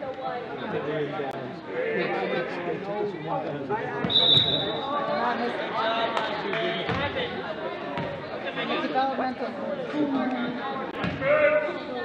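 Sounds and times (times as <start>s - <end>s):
short high whistle blast: 4.1s - 4.8s
overlapping voices in gym: 5.3s - 9.3s.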